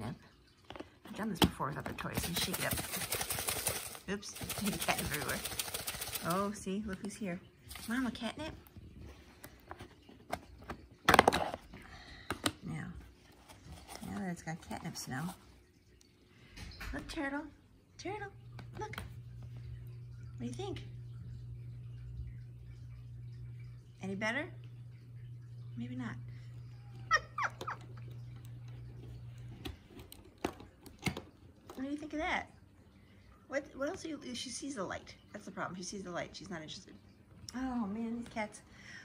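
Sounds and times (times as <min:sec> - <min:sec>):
steady low hum: 0:11.7 - 0:30.2.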